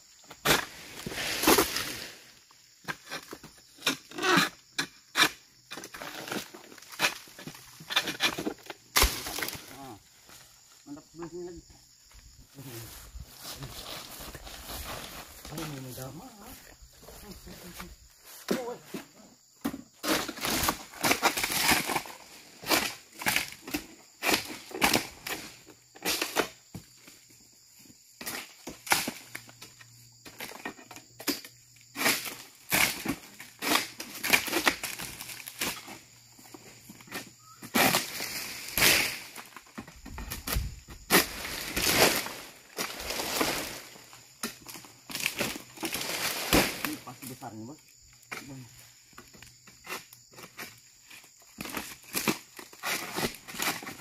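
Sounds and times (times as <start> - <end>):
dry palm fronds rustling: 12.8 - 19.1, 37.8 - 47.4.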